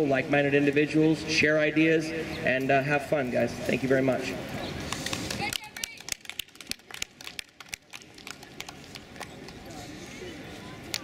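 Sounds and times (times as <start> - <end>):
faint distant voices: 0.0 - 11.0.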